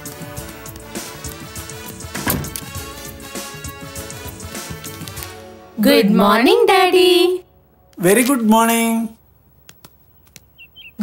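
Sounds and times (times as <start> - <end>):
bird chirps: 10.1 - 11.0.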